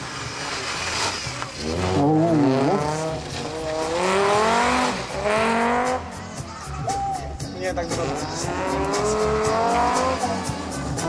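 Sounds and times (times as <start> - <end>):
rally car engine revving: 0.0 - 6.8, 7.8 - 11.0.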